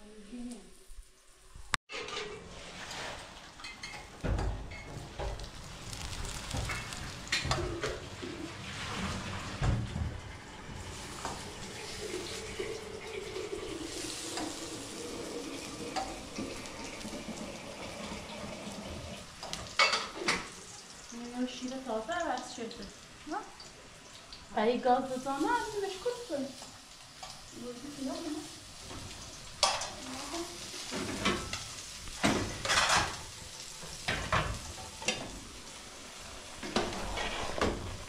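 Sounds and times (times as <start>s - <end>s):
patties sizzling in oil: 0.0s - 38.0s.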